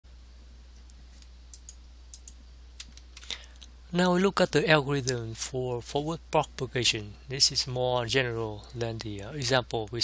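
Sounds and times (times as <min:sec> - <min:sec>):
low electrical hum: 0:00.1 - 0:10.0
person speaking: 0:03.9 - 0:10.0.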